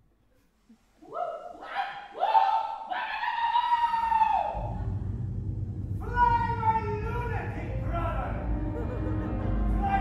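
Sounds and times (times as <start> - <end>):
low steady rumble: 4.6 - 10.0.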